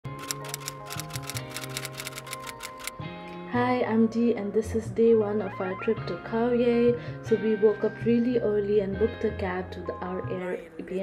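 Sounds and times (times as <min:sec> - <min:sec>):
keyboard typing clicks: 0:00.1 - 0:02.9
background music: 0:00.1 - 0:11.0.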